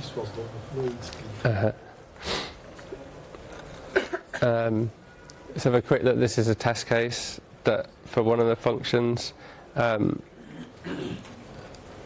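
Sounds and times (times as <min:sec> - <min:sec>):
man sniffing: 0:02.2 - 0:02.6.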